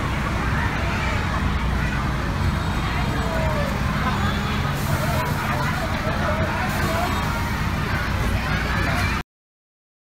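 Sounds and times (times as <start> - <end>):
diesel truck engine running: 0.0 - 9.2
people talking: 0.0 - 9.2
hiss: 4.7 - 5.6.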